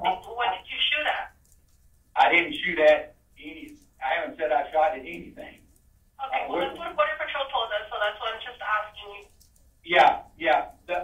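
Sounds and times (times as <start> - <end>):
speech over telephone line: 0.0 - 1.4, 2.2 - 5.6, 6.2 - 9.3.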